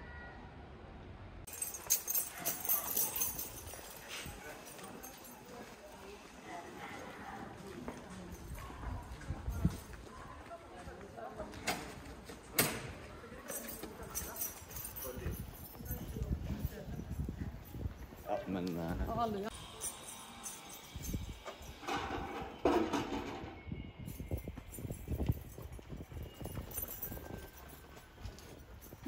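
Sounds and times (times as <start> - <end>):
footsteps on stone paving: 3.0 - 12.5, 24.6 - 29.0.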